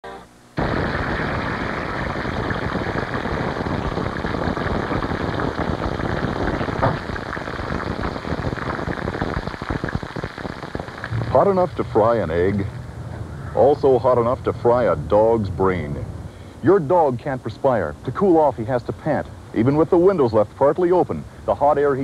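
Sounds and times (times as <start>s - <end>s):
food sizzling in a hot pan: 0.6s - 12.5s.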